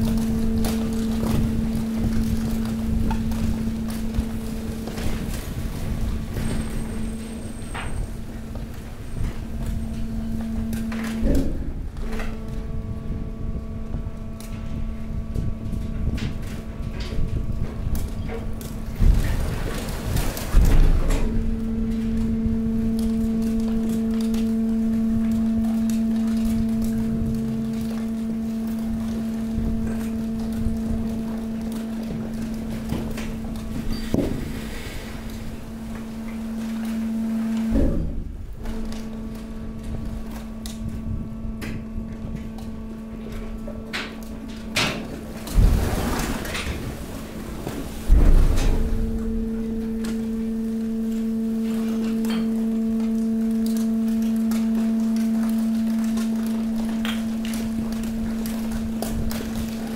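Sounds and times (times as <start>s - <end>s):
heavy thumps of crushing waste: 0.0s - 59.9s
hydraulic power unit humming: 0.0s - 59.9s.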